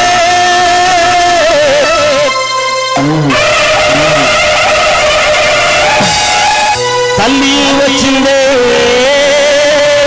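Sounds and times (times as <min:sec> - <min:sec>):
amplified group singing: 0:00.0 - 0:10.0
rushing crowd noise: 0:03.0 - 0:07.6.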